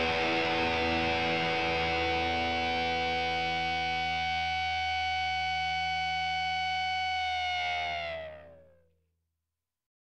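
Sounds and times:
distorted electric guitar chord: 0.0 - 8.7.

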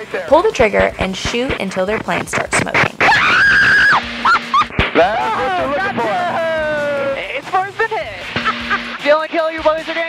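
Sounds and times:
woman shrieking: 3.0 - 4.7
long falling exclamation: 3.1 - 5.7
laughter: 4.3 - 6.4, 8.4 - 9.1.

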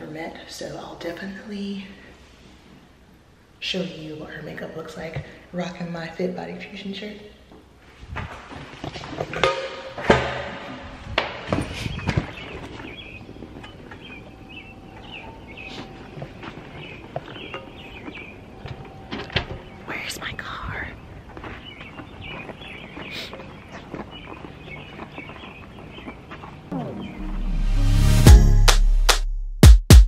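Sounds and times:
rustling and footsteps: 7.8 - 19.9, 20.9 - 26.7.

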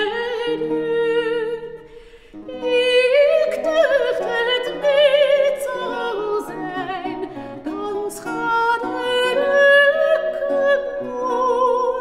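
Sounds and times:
plucked lute: 0.0 - 12.0
woman singing with vibrato: 0.0 - 12.0.

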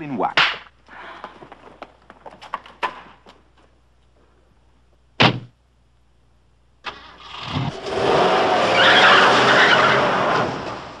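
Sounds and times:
car pulling away hard: 7.2 - 11.0
tyres squealing: 8.6 - 10.4.

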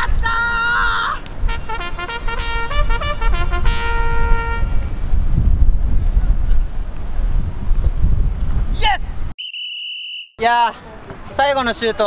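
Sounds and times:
wind rumbling on microphone: 0.0 - 9.3
two-pitched electronic tone: 9.4 - 10.4.

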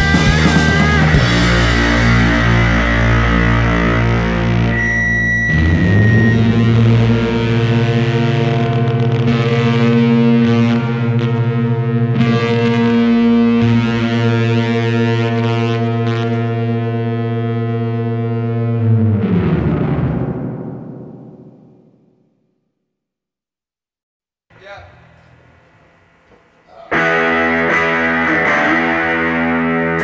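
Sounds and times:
heavy rock with distorted guitar: 0.0 - 21.9, 26.7 - 30.0
brief high whine: 4.5 - 7.9.

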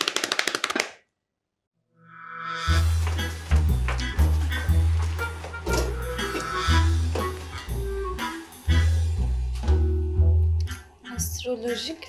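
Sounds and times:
music with held low note: 2.6 - 12.0.

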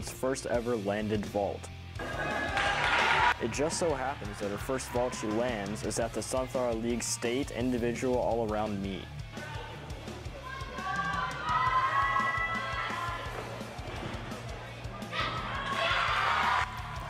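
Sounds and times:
background music with bass line: 0.0 - 17.0
crowd cheering and screaming: 2.0 - 5.6, 10.4 - 13.6, 15.0 - 17.0.

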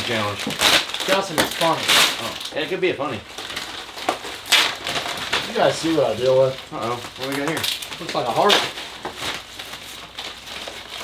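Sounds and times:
paper packaging crinkling: 0.0 - 11.0.

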